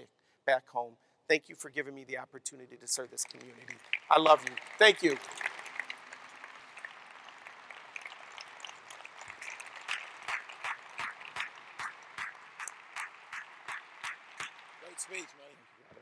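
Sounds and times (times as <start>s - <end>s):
audience applauding: 3.0s - 15.4s
close hand claps: 3.2s - 15.2s.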